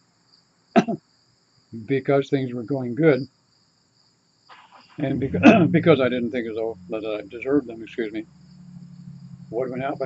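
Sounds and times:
man coughing: 0:00.8 - 0:01.0
high insect chirring: 0:05.8 - 0:10.0.

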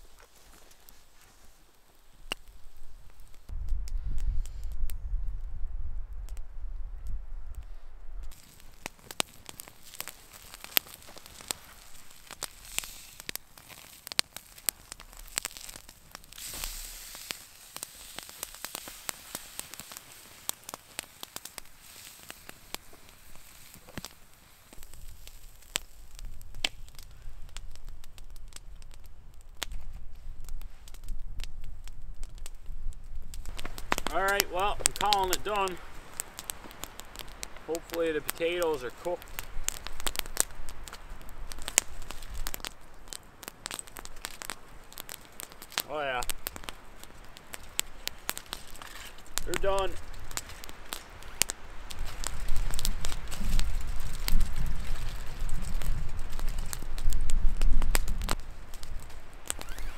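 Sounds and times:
campfire crackling and popping: 0:00.0 - 0:59.9.

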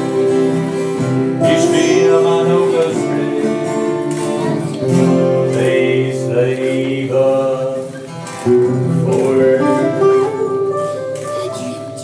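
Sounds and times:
acoustic guitars strummed: 0:00.0 - 0:12.0
person singing: 0:01.4 - 0:08.1, 0:08.9 - 0:12.0.

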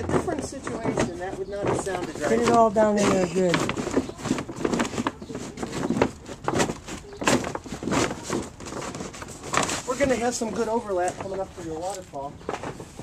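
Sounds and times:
plastic liner crinkling: 0:00.0 - 0:13.0.

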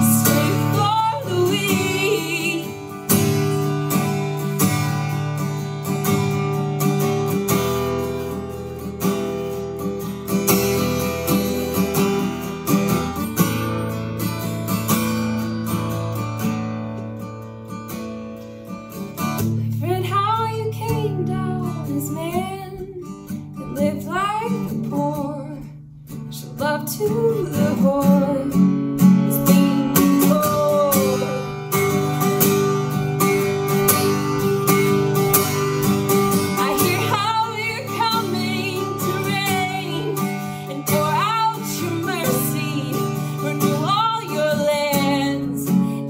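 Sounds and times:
woman singing: 0:00.0 - 0:04.2, 0:19.7 - 0:32.1, 0:36.3 - 0:46.0
acoustic guitar strumming: 0:00.0 - 0:46.0.

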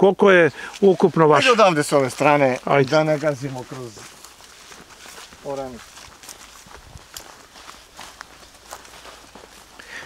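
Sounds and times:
footsteps on dry ground: 0:00.4 - 0:10.0.

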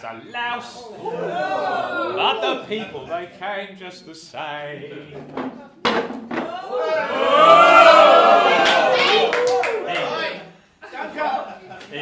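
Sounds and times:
voices singing: 0:01.0 - 0:05.8
sharp claps: 0:08.6 - 0:10.1.

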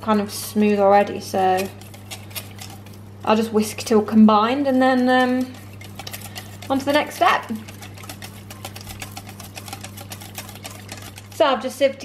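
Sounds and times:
whisk clicking against glass bowl: 0:04.8 - 0:11.5.

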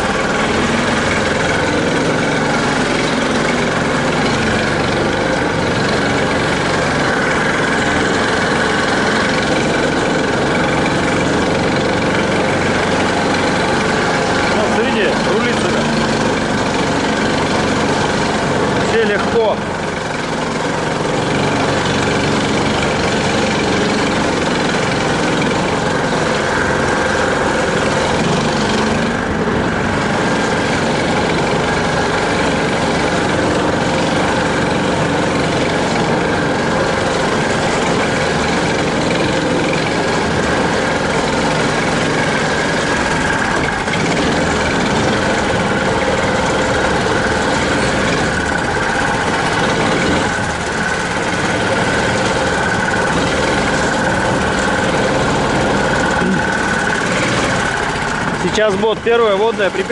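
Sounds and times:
high whine: 0:00.0 - 0:59.9
vehicle engine running: 0:00.0 - 0:59.9.

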